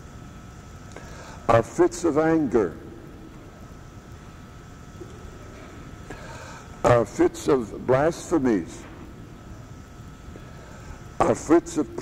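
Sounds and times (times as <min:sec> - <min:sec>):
low hiss: 0:00.0 - 0:12.0.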